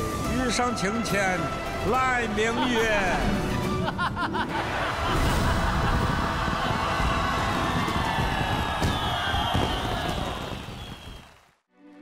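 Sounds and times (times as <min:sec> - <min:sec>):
fireworks crackling and bursting: 0:05.0 - 0:11.6.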